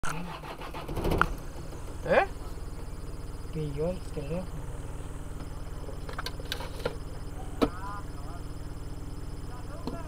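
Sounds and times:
car engine running: 0:00.0 - 0:10.0.

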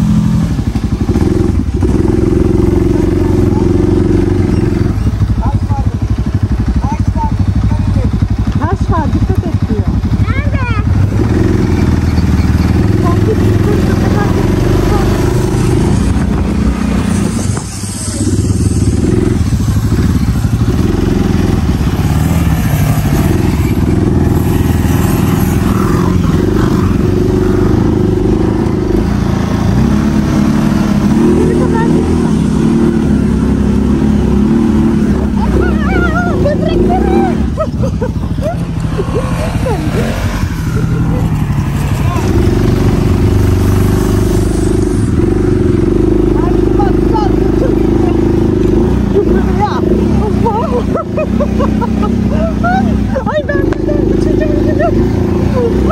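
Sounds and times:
quad bike engine running: 0:00.0 - 0:55.9.

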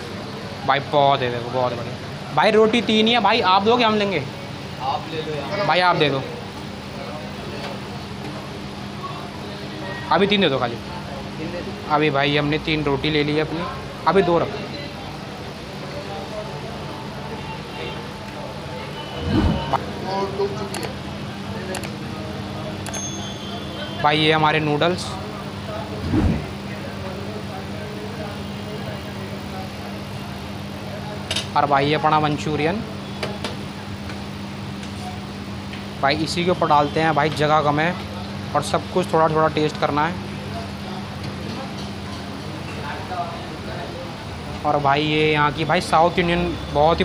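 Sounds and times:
traffic rumble: 0:18.0 - 0:22.7, 0:25.3 - 0:27.4
brief low thump: 0:19.2 - 0:19.8
constant low hum: 0:19.2 - 0:22.1, 0:25.5 - 0:27.2.

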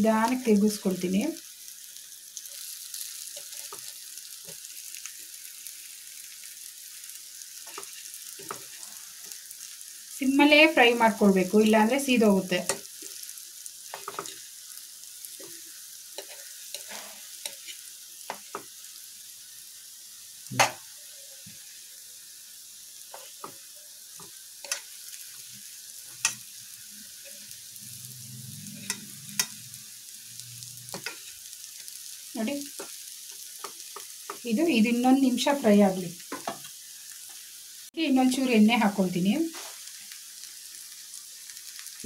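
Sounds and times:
banana slices sizzling in oil: 0:00.0 - 0:42.0.

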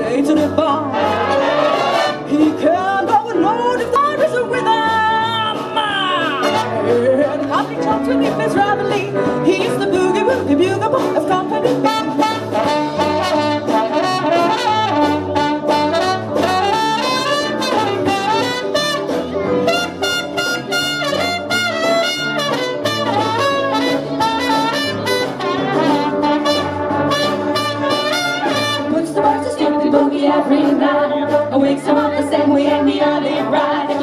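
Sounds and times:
brass and saxophones playing jazz: 0:00.2 - 0:34.0.

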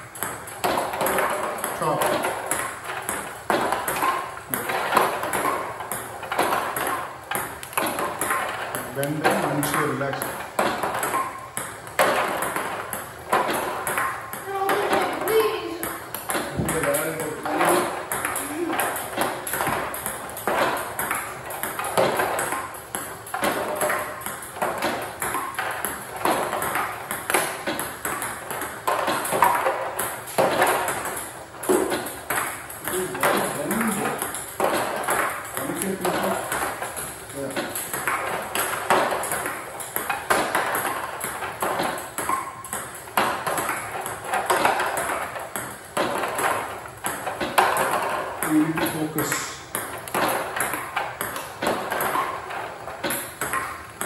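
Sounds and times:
table tennis ball clicking: 0:00.0 - 0:54.0.

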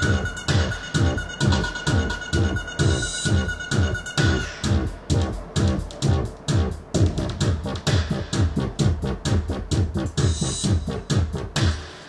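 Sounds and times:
synthesized wobble bass: 0:00.0 - 0:11.8
programmed drum beat: 0:00.0 - 0:12.0.

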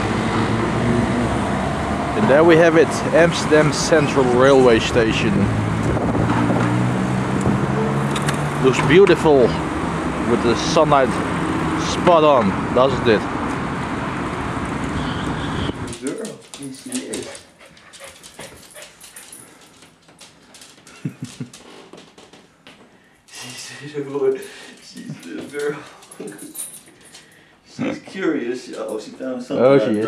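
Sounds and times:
cars passing close by: 0:00.0 - 0:16.0.

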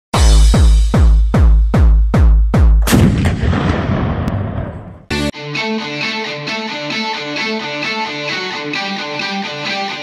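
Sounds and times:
deep bass hits falling in pitch: 0:00.2 - 0:05.3
loud electronic boom: 0:02.8 - 0:05.1.

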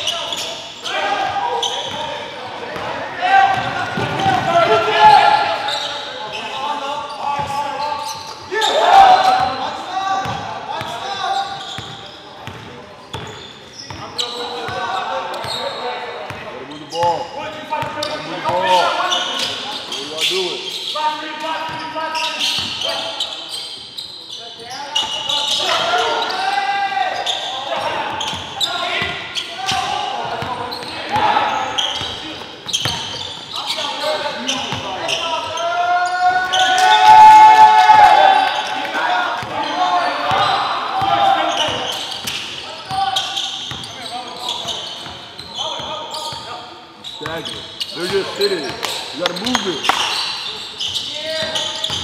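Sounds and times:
players shouting: 0:00.0 - 0:11.8, 0:25.0 - 0:32.3, 0:33.0 - 0:45.0.

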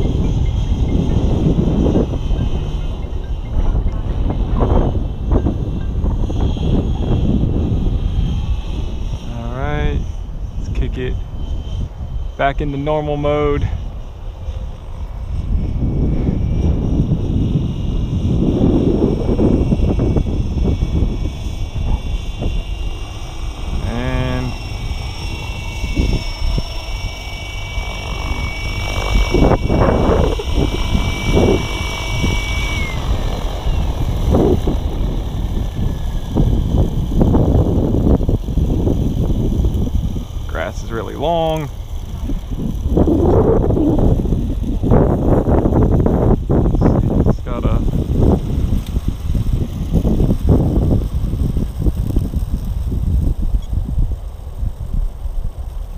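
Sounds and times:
rc helicopter motor and rotor whine: 0:00.0 - 0:55.9.

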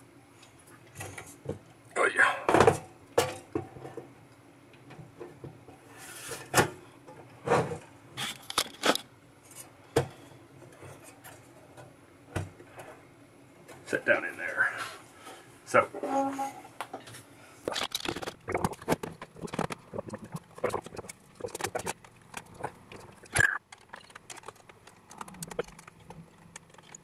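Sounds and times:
circuit boards clattering: 0:17.7 - 0:27.0.

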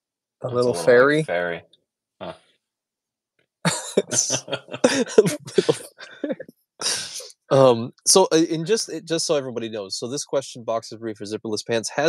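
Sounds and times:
man laughing: 0:03.7 - 0:09.4.

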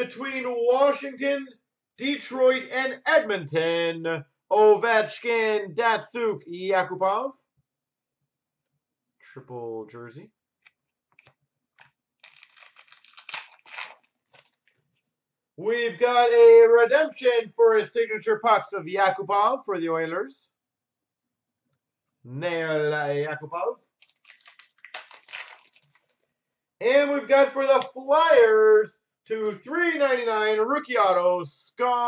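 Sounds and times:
man speaking: 0:00.0 - 0:07.4, 0:09.2 - 0:10.3, 0:15.6 - 0:20.5, 0:22.3 - 0:23.8, 0:26.8 - 0:32.0
card packaging crinkling: 0:11.8 - 0:14.8, 0:24.0 - 0:26.2.

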